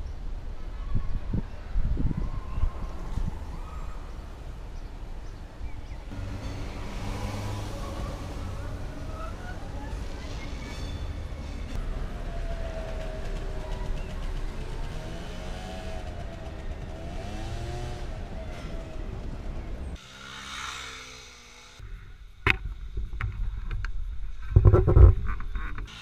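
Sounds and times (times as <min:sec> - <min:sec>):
city road traffic rumble: 0:00.0 - 0:26.0.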